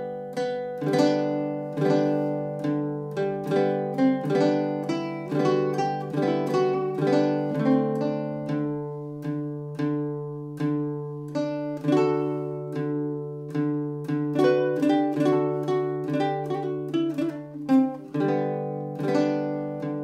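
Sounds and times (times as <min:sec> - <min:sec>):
fingerpicked ukulele: 0:00.0 - 0:20.0.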